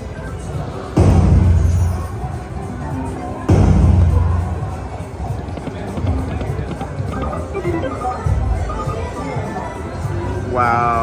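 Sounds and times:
slot machine music: 0:05.7 - 0:10.0
short melodic tones: 0:07.1 - 0:09.0.

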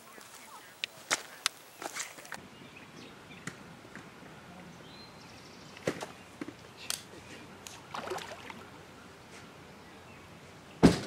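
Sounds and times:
faint outdoor background: 0:00.0 - 0:11.0
sharp loud thump: 0:10.8 - 0:11.0.

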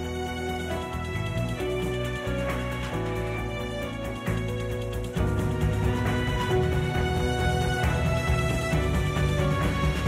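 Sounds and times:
deep bass notes: 0:00.0 - 0:10.0.

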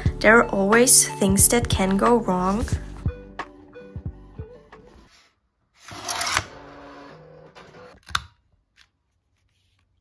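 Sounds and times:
paper rustling scrape: 0:05.0 - 0:08.0.

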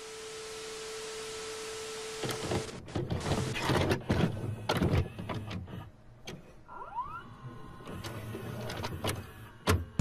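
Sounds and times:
mechanism clicks and clunks: 0:02.2 - 0:06.6, 0:07.8 - 0:10.0
motor whirring: 0:06.7 - 0:10.0.

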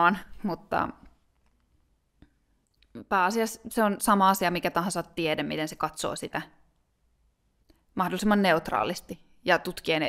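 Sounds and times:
person speaking: 0:00.0 - 0:01.2, 0:07.9 - 0:10.0.

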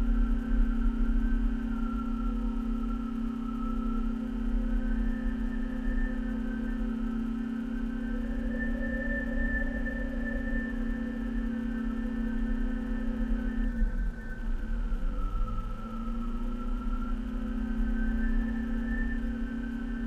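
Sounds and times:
held tones over low drone: 0:00.0 - 0:20.0.

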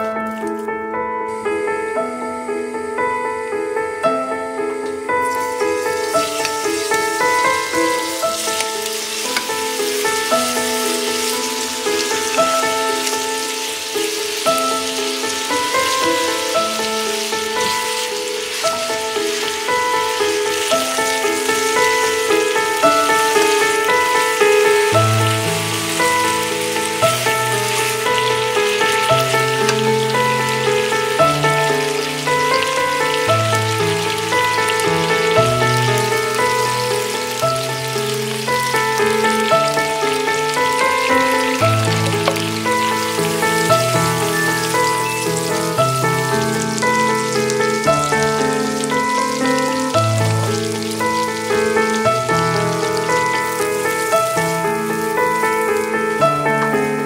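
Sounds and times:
light background music: 0:00.0 - 0:45.9
meat sizzling in a pan: 0:01.3 - 0:57.0.

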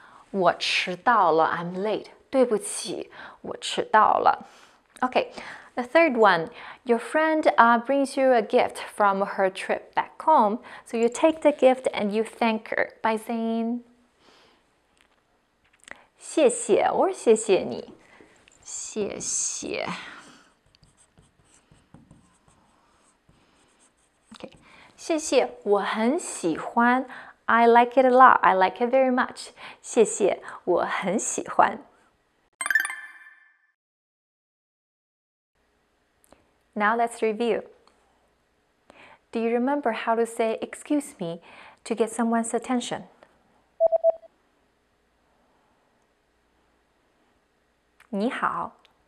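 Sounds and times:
marker writing on a whiteboard: 0:20.6 - 0:24.7
short electronic beeps: 0:32.6 - 0:33.7, 0:43.8 - 0:44.3.

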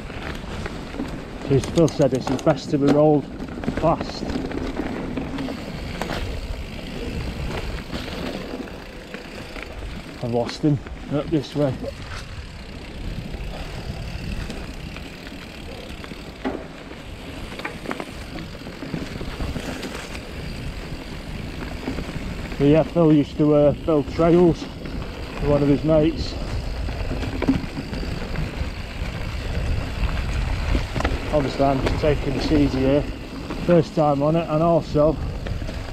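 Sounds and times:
bike tyre rumble: 0:00.0 - 0:35.9
bike knocking over bumps: 0:14.1 - 0:20.4, 0:24.6 - 0:34.3
wind on microphone: 0:24.8 - 0:33.1.

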